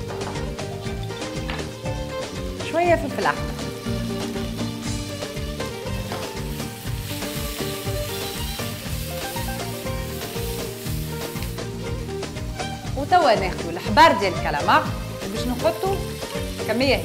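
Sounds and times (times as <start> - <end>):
background music with beat: 0.0 - 17.0
food sizzling in frying pan: 0.0 - 17.0.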